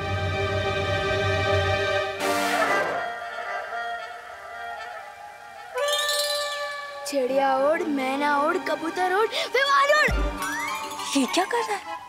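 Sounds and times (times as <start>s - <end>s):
whistle-like rising falling note: 5.8s - 7.1s.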